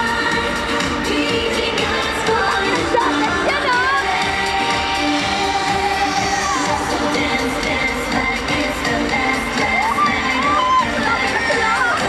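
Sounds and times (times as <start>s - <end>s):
crowd shouting and cheering: 0.0s - 12.0s
live pop dance music: 0.0s - 12.0s.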